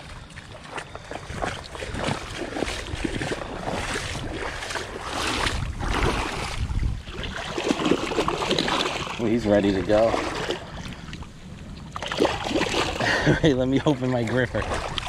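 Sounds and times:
shallow water sloshing and splashing: 0.0 - 15.0
wind rumble on microphone: 0.0 - 15.0.

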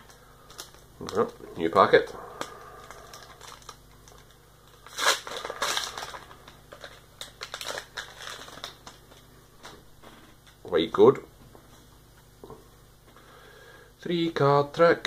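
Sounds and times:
foil wrapper tearing and crinkling: 2.9 - 9.2.

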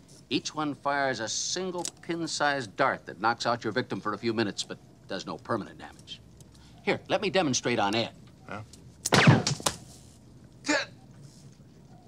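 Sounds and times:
dart gun shot: 9.1 - 9.8.

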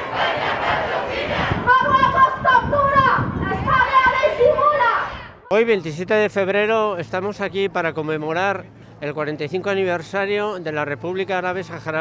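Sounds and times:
crowd cheering and shouting: 0.0 - 5.4.

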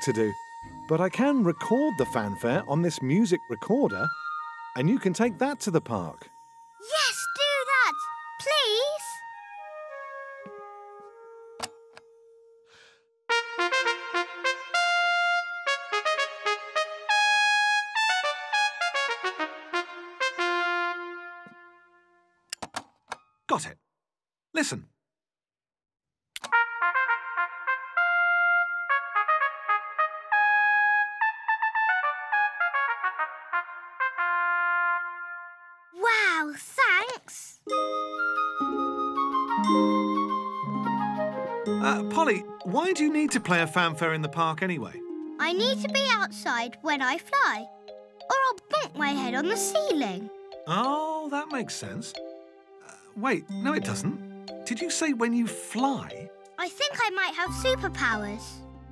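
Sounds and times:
trumpet playing a fanfare: 13.3 - 21.8, 26.5 - 35.7.

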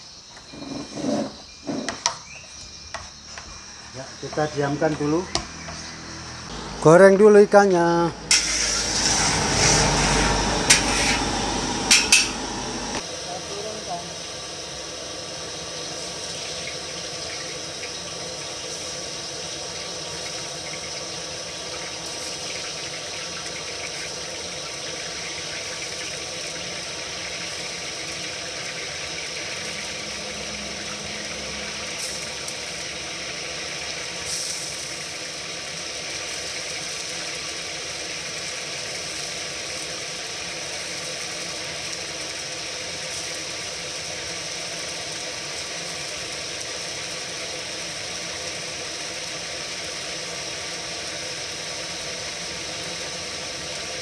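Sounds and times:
fish deep-frying in hot oil: 13.0 - 54.0.

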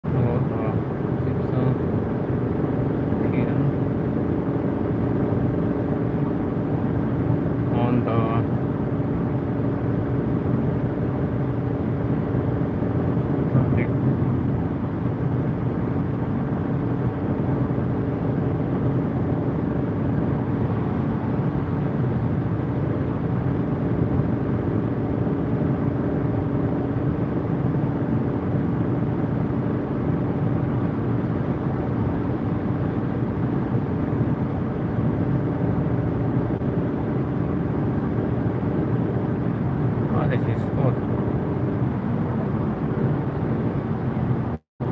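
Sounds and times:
car road and engine noise: 0.0 - 44.9
constant low hum: 0.0 - 44.9.

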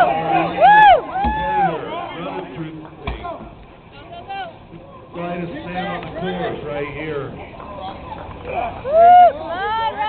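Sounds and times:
faint voices talking: 0.0 - 10.0
thump: 1.2 - 1.6, 3.0 - 3.6.

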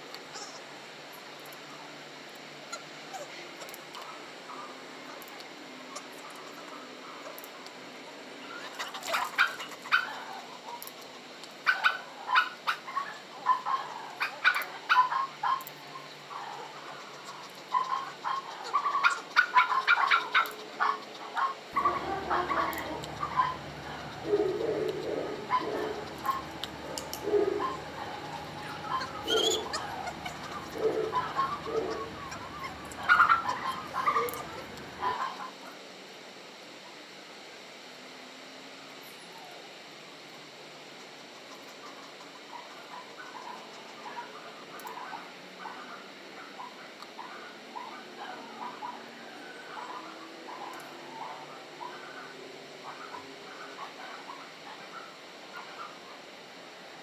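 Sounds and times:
dog whining and yipping: 21.8 - 35.2.

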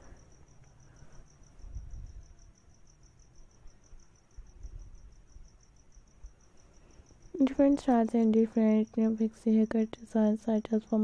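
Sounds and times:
faint background noise: 0.0 - 11.0.

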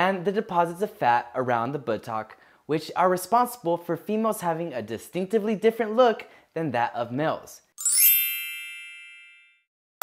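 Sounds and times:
bright chime: 7.8 - 9.7.

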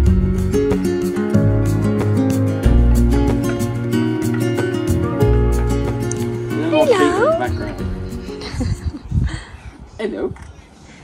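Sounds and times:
background music: 0.0 - 9.0.

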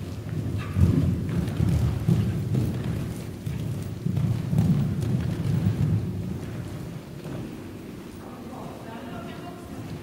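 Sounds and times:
horse hoofbeats on soft footing: 0.0 - 8.2.

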